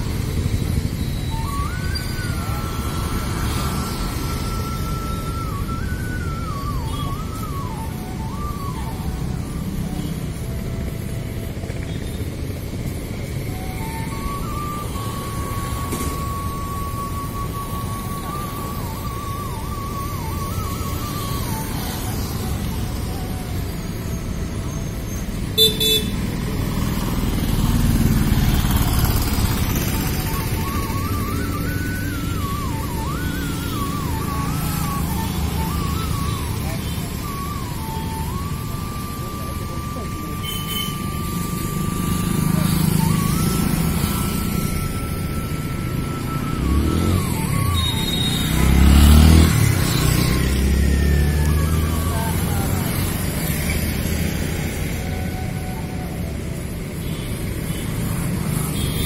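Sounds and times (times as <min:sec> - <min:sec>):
thin high melody: 0:00.0 - 0:26.0, 0:27.6 - 0:57.1
motorcycles and cars passing: 0:00.0 - 0:59.0.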